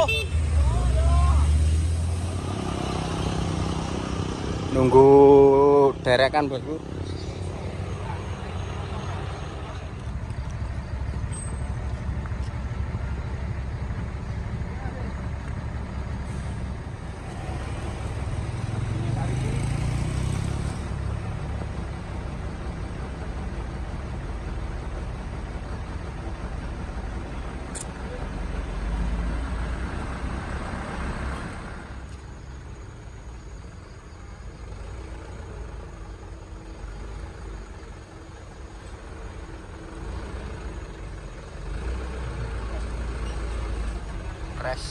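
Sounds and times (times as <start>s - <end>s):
heavy truck diesel engines: 0.0s - 44.9s.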